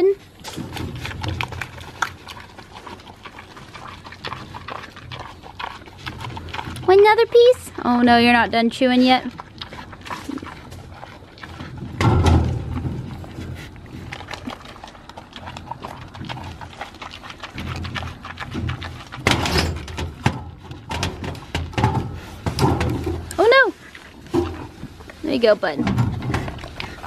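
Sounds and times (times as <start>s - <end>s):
wild boar chewing: 0.0s - 27.0s.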